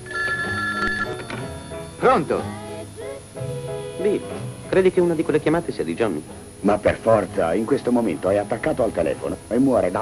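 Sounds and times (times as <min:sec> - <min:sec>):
telephone ringing: 0:00.0 - 0:02.6
soft background music: 0:00.0 - 0:10.0.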